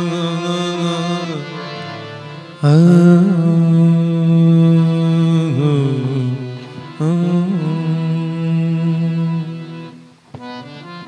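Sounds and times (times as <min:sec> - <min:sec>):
man singing a long wordless note: 0:00.0 - 0:01.6, 0:02.6 - 0:10.0
harmonium: 0:00.0 - 0:11.0.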